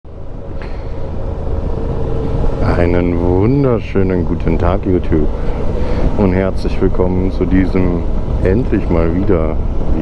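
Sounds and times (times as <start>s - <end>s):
riding noise: 0.1s - 10.0s.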